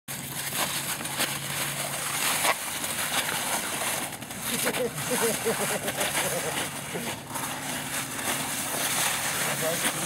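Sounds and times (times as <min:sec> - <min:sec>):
footsteps crunching in snow: 0:00.1 - 0:10.0
low hum: 0:00.1 - 0:10.0
wheelchair wheels crunching through slush: 0:00.1 - 0:10.0.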